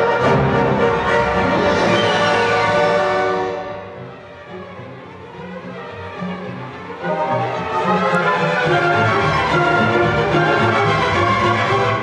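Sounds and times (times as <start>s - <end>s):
symphony orchestra playing: 0.0s - 12.0s.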